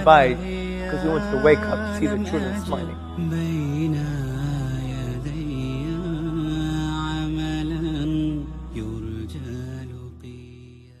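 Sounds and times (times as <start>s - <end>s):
low steady drone: 0.0s - 9.7s
wordless chant-like melody: 0.0s - 11.0s.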